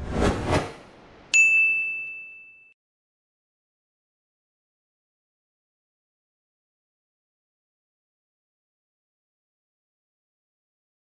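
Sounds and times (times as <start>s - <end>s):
bright bell-like ding: 1.3s - 2.8s.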